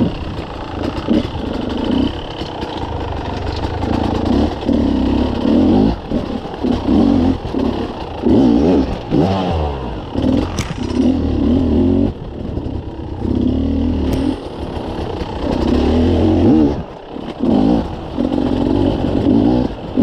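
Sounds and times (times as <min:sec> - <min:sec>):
motorcycle engine revving: 0:00.0 - 0:20.0
rocks clattering under tyres: 0:10.3 - 0:11.2.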